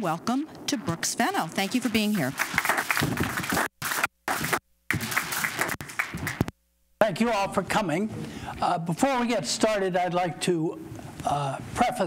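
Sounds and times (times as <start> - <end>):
audience applauding: 2.3 - 6.5.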